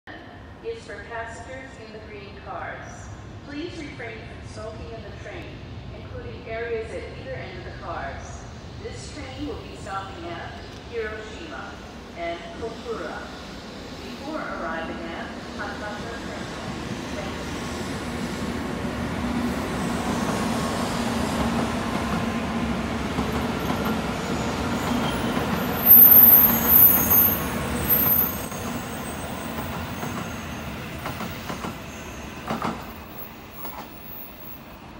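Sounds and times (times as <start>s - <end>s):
train low hum: 0.1s - 34.9s
train rushing past: 3.1s - 34.9s
high-pitched train squeals: 24.2s - 34.7s.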